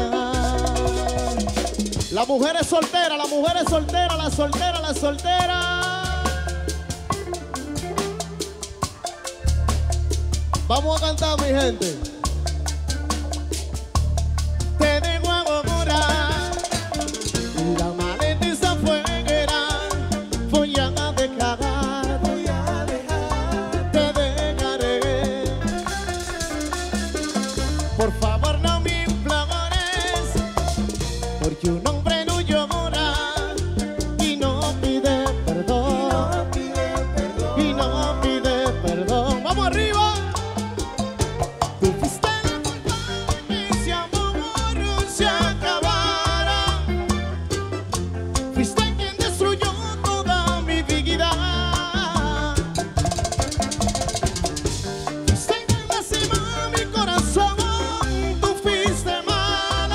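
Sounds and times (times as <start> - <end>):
guitar melody: 0.0 - 2.2, 3.6 - 59.9
bass and percussion: 0.0 - 59.9
live band playing: 0.0 - 59.9
lead guitar melody: 5.5 - 31.6.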